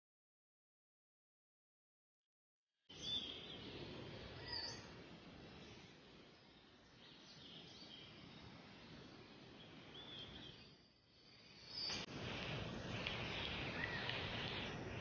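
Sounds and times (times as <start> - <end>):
faint outdoor ambience: 2.9 - 15.0
high bird chirps: 4.4 - 5.0, 13.1 - 14.8.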